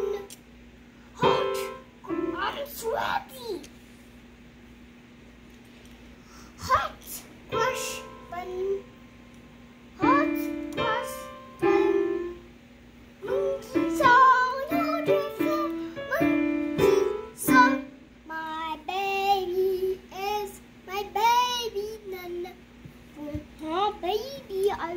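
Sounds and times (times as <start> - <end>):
child singing wordless tune: 0.0 - 0.4, 1.2 - 3.7, 6.6 - 9.0, 10.0 - 12.4, 13.2 - 24.9.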